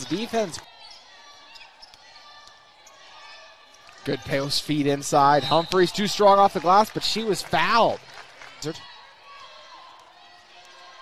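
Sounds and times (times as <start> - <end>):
gym background noise: 0.0 - 11.0.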